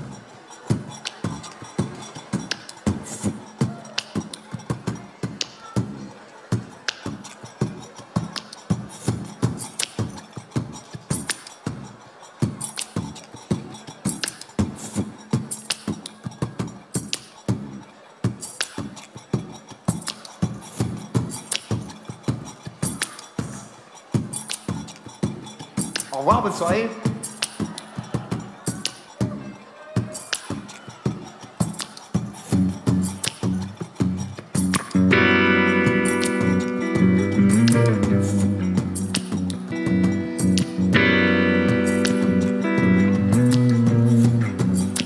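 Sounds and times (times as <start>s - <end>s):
percussion beat of clicks and thumps: 0.0s - 45.0s.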